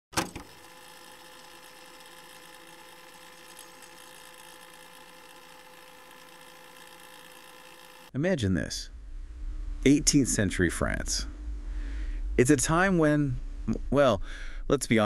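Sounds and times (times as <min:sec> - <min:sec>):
low hum with hiss: 0:00.4 - 0:15.0.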